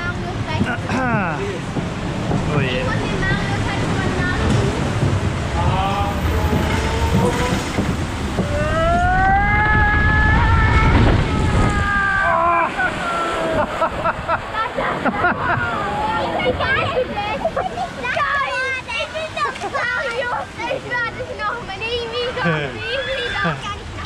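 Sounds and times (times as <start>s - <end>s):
rush of wind and water: 0.0s - 24.0s
riders screaming and whooping: 8.4s - 16.3s.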